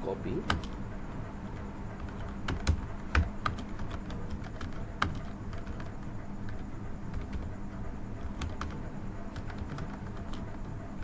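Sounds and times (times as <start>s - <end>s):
computer keyboard typing: 0.4s - 0.8s, 2.0s - 7.6s, 8.2s - 10.8s.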